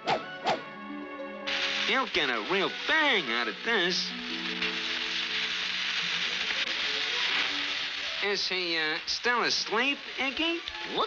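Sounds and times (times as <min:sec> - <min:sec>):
cartoon background music: 0:00.0 - 0:05.6
dynamite fuse sizzling: 0:01.5 - 0:11.0.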